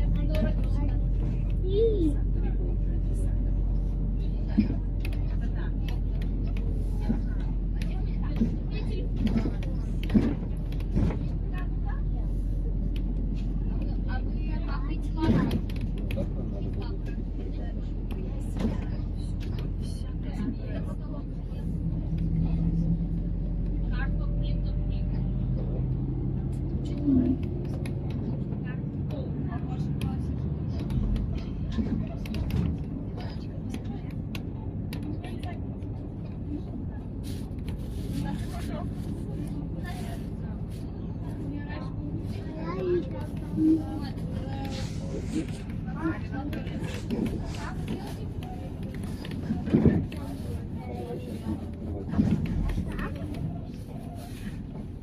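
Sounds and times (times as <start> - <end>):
bus engine and road drone: 0.0 - 55.0
rattles and knocks from bus body: 6.3 - 11.8, 15.0 - 20.6, 30.7 - 35.3, 45.5 - 50.5, 51.4 - 53.4.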